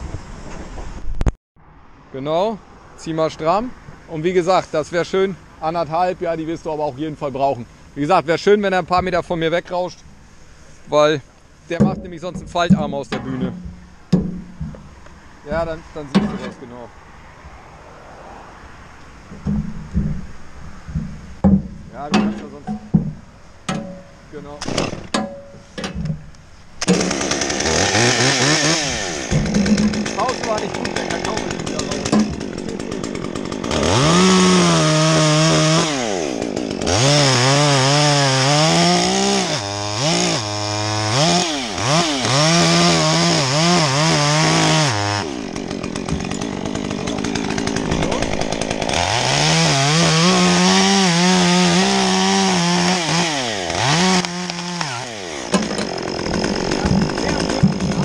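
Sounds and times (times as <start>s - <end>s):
chainsaw cutting through tree trunk: 24.6s - 25.1s, 26.8s - 58.0s.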